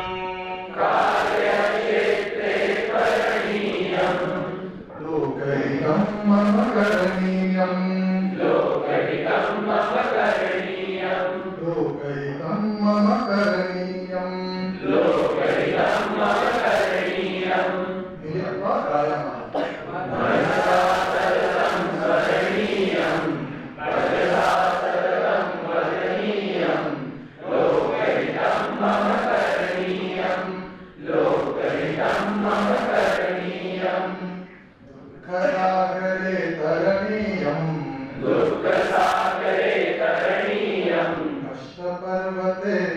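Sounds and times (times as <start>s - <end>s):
man chanting a song: 4.7s - 8.9s, 11.5s - 16.6s.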